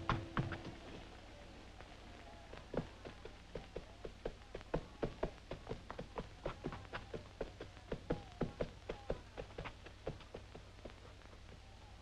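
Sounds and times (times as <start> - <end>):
hooves clip-clopping on hard ground: 0.0 - 1.2, 1.8 - 12.0.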